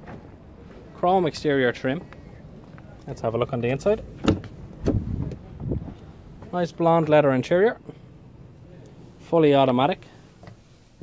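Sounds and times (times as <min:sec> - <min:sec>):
low handling rumble: 0:00.4 - 0:10.1
car door knock opening: 0:04.2 - 0:05.4.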